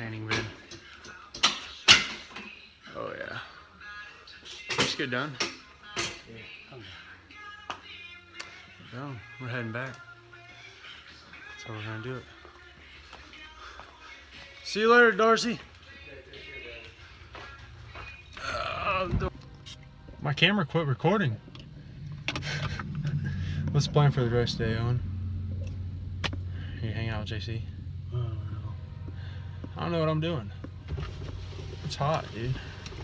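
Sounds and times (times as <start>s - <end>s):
low steady hum: 17.0s - 33.0s
person's wavering vocal sound: 18.3s - 19.3s, 28.0s - 28.8s
short rising and falling tone: 21.5s - 26.5s.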